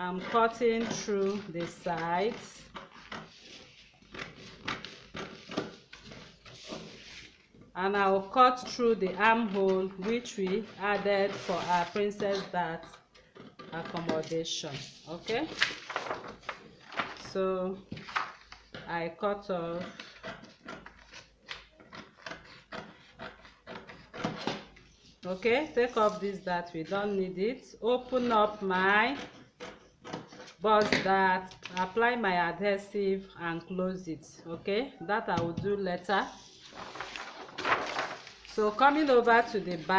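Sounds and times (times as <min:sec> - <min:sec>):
paper rustling: 0:00.8 - 0:07.7, 0:08.6 - 0:12.5, 0:13.9 - 0:18.8, 0:36.2 - 0:39.9.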